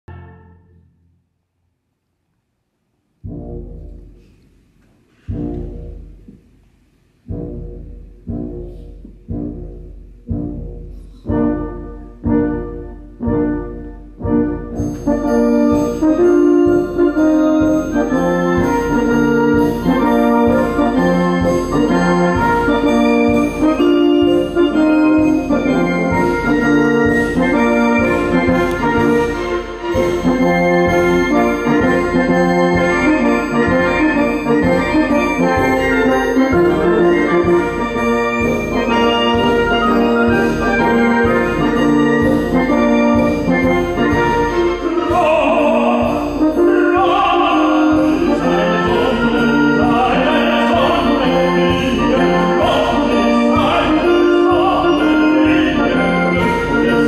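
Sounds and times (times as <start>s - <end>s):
orchestra playing loud chords: 0.0s - 1.1s, 7.3s - 57.0s.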